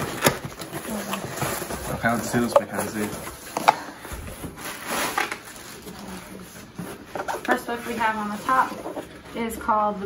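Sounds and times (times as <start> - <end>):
plastic packing crinkling: 0.0 - 9.2.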